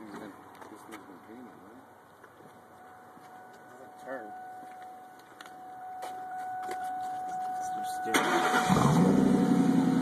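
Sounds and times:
car engine starting: 0:08.0 - 0:10.0
starter whine: 0:08.0 - 0:10.0.

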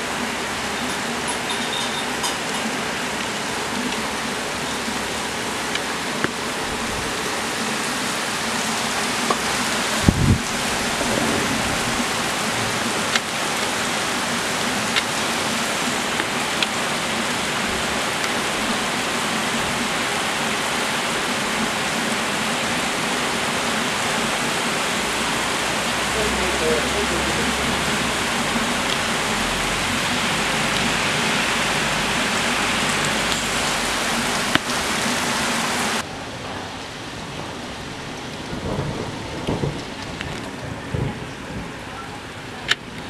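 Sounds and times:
rain pouring on street: 0:00.0 - 0:43.0.

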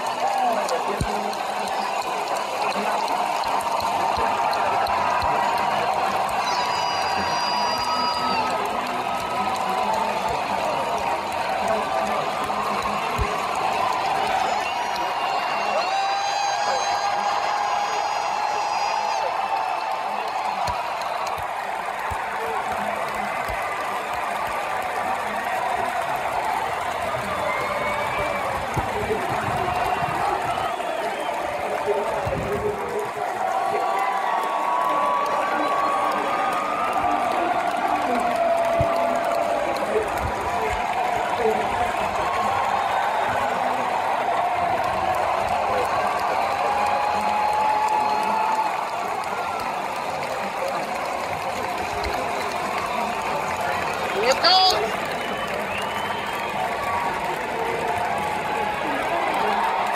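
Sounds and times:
stadium crowd cheering: 0:00.0 - 0:59.9.

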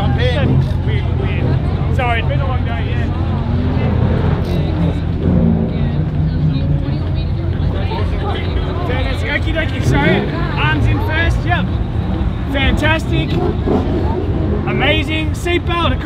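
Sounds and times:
voices: 0:00.0 - 0:16.0.

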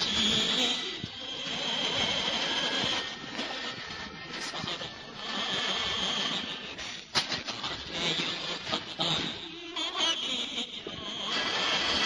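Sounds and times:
record surface noise hiss: 0:00.0 - 0:12.0.

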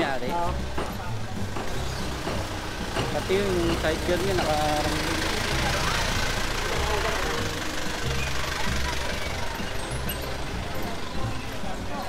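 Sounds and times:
background music: 0:00.0 - 0:12.0
truck engine running: 0:00.4 - 0:12.0.

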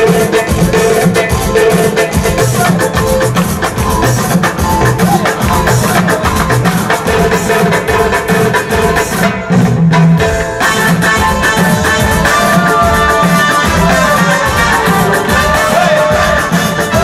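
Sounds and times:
dance music with fast drum beat: 0:00.0 - 0:17.0.

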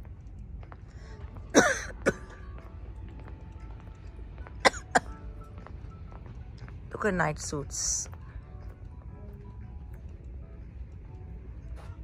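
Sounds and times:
person coughing: 0:01.5 - 0:02.4, 0:04.6 - 0:05.1.

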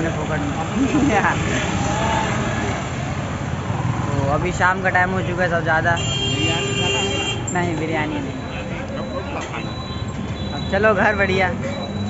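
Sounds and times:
motorbikes and cars passing: 0:00.0 - 0:12.0.

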